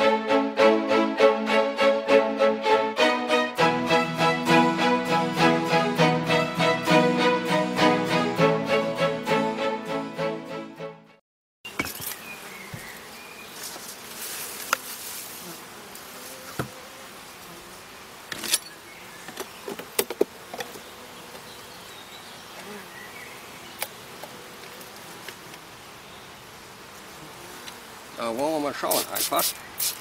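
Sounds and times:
honeybees buzzing: 0.0 - 10.2, 11.7 - 30.0
knocks and clicks of hive boxes: 19.3 - 21.4.

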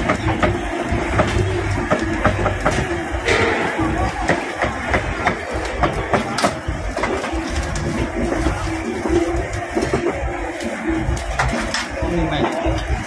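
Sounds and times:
background hubbub: 0.0 - 13.0.

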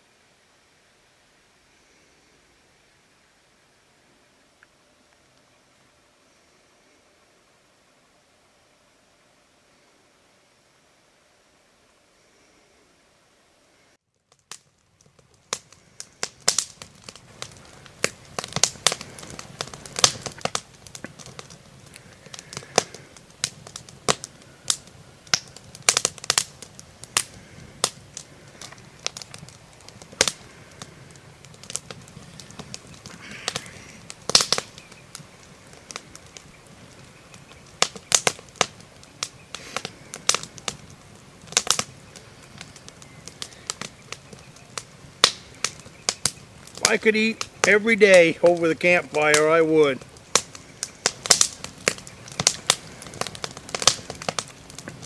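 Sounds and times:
low rumble of fire: 0.0 - 55.0
campfire crackling and popping: 14.1 - 55.0.

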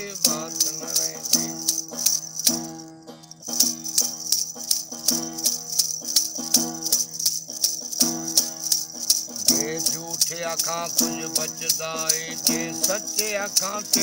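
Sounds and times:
plucked lute strumming: 0.0 - 14.0
sharp rattling jingle: 0.0 - 14.0.

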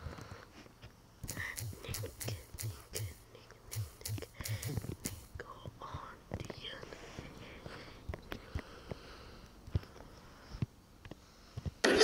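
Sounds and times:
person whispering: 1.3 - 8.0.

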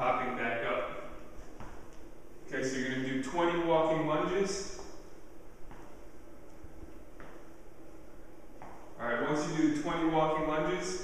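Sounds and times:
low room noise: 0.0 - 11.0
footfalls on rubber floor: 1.4 - 2.0, 5.6 - 6.0, 6.8 - 7.5, 8.6 - 8.9.

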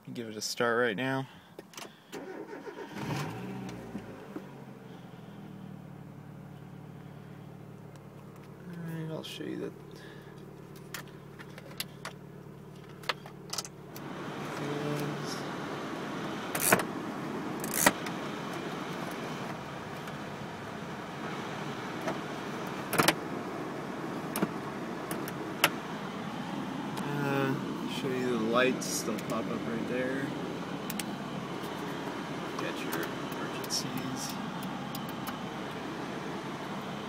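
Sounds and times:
car engine idling: 0.7 - 37.0
ventilation blower hiss: 19.8 - 37.0.

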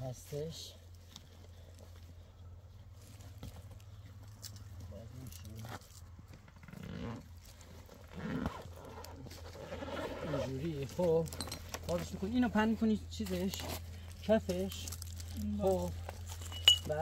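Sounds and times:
steady low hum: 0.0 - 17.0
voices: 8.1 - 17.0.

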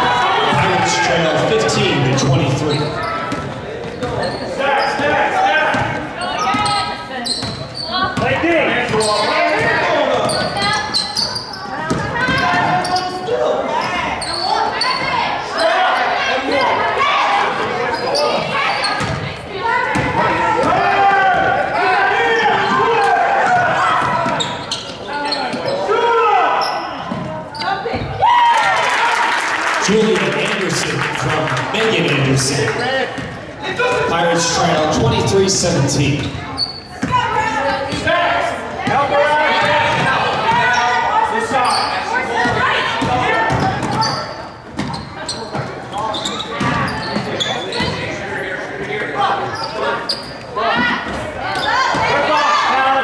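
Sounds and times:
voices in echoing gym: 0.0 - 53.0.

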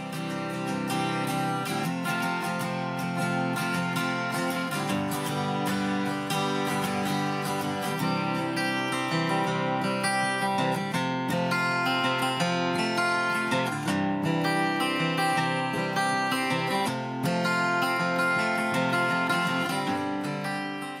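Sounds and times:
acoustic guitar strummed and picked: 0.0 - 21.0.

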